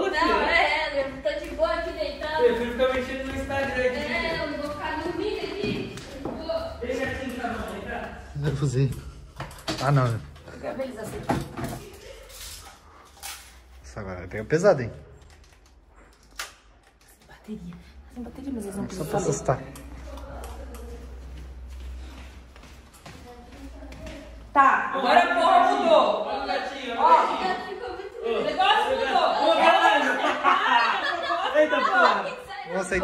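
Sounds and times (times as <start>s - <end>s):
people talking: 0.0s - 8.6s
footsteps: 1.0s - 14.8s, 15.8s - 24.9s.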